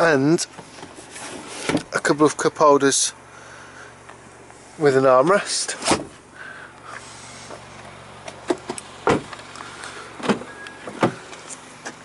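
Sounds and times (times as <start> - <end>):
steady low hum: 0.6 - 12.0.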